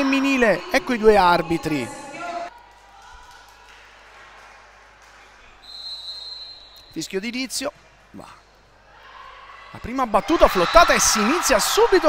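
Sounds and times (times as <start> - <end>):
referee's whistle blast: 5.6 - 7.0.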